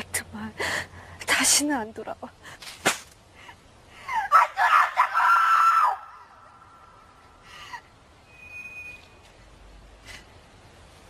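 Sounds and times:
loud high-pitched scream: 0:04.3 - 0:06.5.

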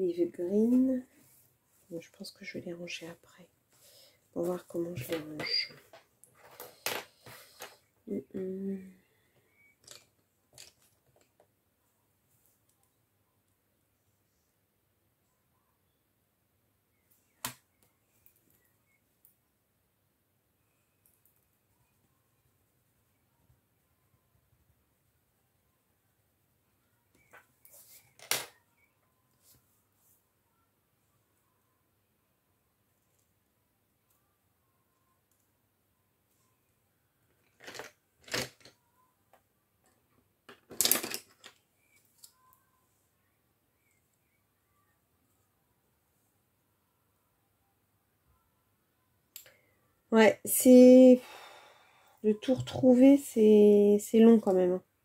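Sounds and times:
wooden pencils clattering: 0:09.8 - 0:11.4, 0:27.7 - 0:28.6, 0:37.4 - 0:38.8, 0:40.5 - 0:42.3.

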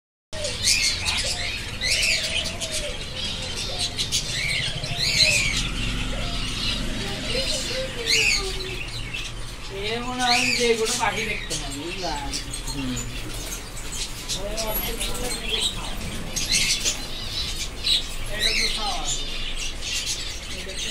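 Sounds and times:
budgerigars chirping: 0:00.4 - 0:20.9.

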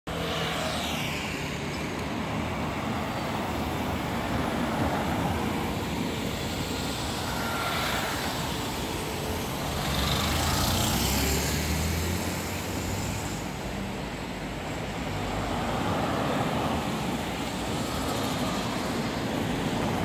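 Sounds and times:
motor scooter passing: 0:00.1 - 0:14.0
traffic hum: 0:00.1 - 0:20.0
vehicles passing: 0:00.1 - 0:20.0.

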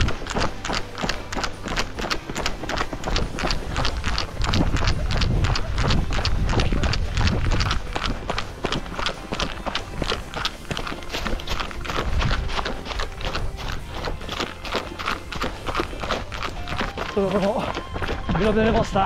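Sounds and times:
running footsteps on gravel: 0:00.0 - 0:19.0
person speaking: 0:16.6 - 0:19.0.

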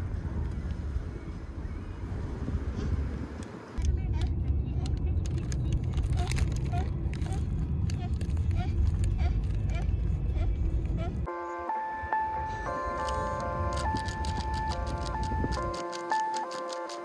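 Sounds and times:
car road and engine rumble: 0:00.0 - 0:17.0
light regular ticks: 0:13.0 - 0:17.0.

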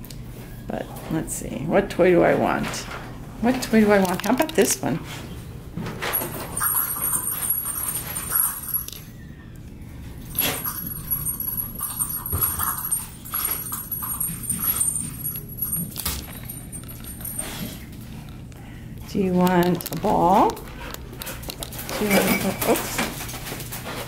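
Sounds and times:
dog rummaging through toys: 0:10.2 - 0:24.0.

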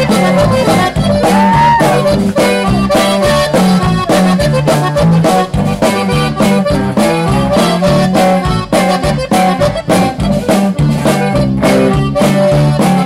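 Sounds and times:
button accordion melody: 0:00.0 - 0:13.0
drums oom-pah beat: 0:00.0 - 0:13.0
electric bass: 0:00.0 - 0:13.0.

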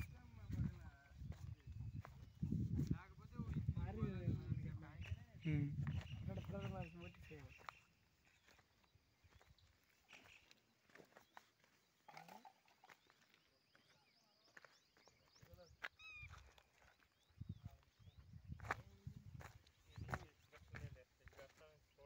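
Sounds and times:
chirps: 0:04.4 - 0:22.0.

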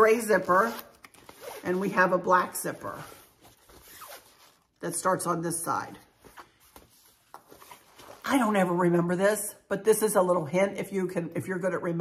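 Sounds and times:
soft fabric rustling: 0:00.0 - 0:08.8.

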